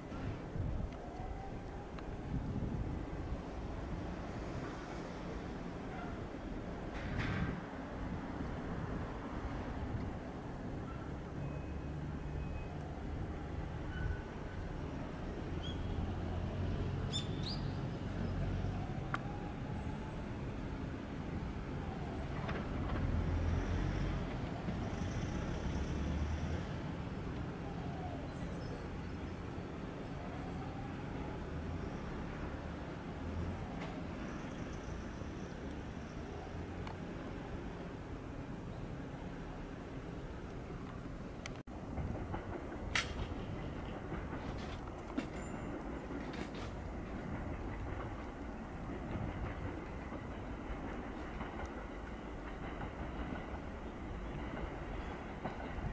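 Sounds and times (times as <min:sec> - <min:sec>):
road vehicles rumbling: 0:00.0 - 0:55.9
train wheel clicks: 0:41.4 - 0:48.4, 0:49.0 - 0:53.7.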